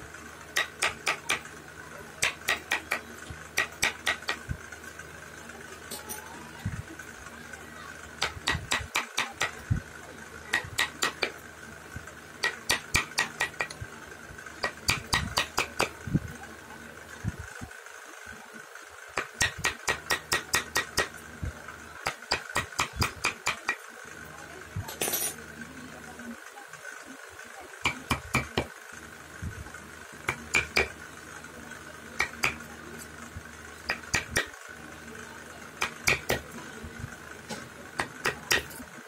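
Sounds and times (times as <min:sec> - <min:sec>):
mallet tapping chisel into wood: 0:00.6 - 0:01.4, 0:10.5 - 0:11.3, 0:12.4 - 0:13.8, 0:27.9 - 0:28.7, 0:30.3 - 0:30.9, 0:33.9 - 0:34.5, 0:35.8 - 0:36.4.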